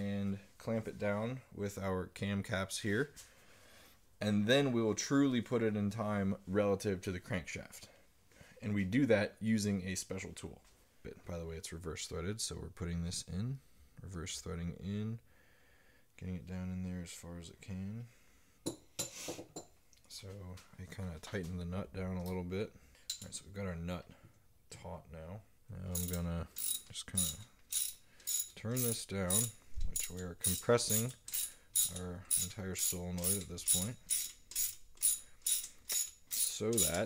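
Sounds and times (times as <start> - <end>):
hand ratchet clicking: 25.9 - 37.0.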